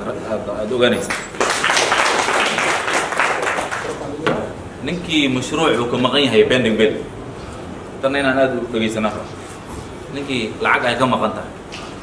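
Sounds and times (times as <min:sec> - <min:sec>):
group applause: 0:01.1 - 0:04.2.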